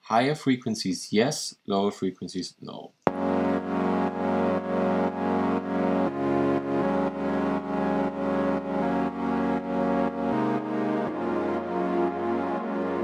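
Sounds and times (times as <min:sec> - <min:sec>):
synthesizer pad chords pulsing: 0:03.1 - 0:13.0.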